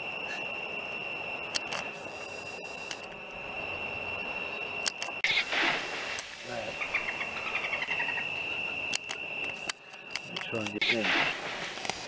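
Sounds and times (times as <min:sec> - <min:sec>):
steady high-pitched tone: 0:00.0 - 0:12.0
bird chirping: 0:06.6 - 0:11.0.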